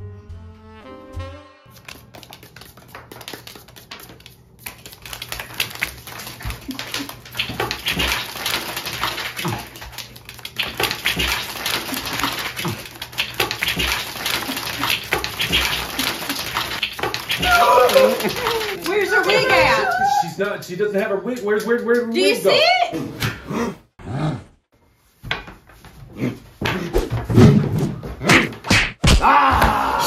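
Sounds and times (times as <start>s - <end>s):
playing cards being shuffled: 1.7s - 19.9s.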